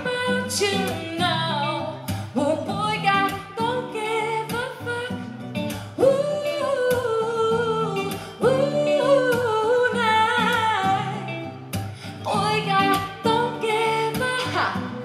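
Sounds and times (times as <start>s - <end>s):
guitar accompaniment: 0.0s - 15.0s
woman singing: 0.0s - 15.0s.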